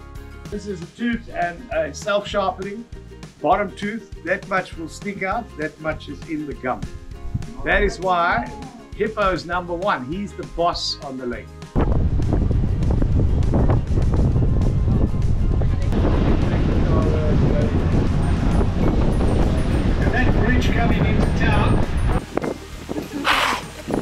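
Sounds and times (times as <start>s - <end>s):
background music: 0.0s - 24.0s
wind rumbling on microphone: 6.8s - 8.1s, 11.7s - 24.0s.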